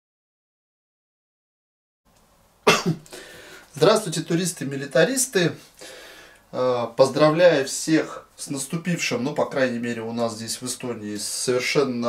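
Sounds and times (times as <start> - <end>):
man coughing: 2.7 - 3.1.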